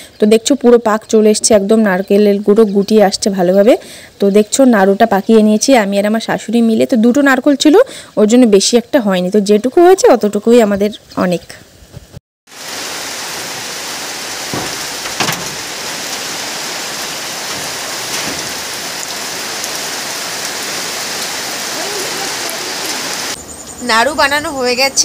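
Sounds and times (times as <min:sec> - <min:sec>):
steady rain hiss: 0:11.6 - 0:25.0.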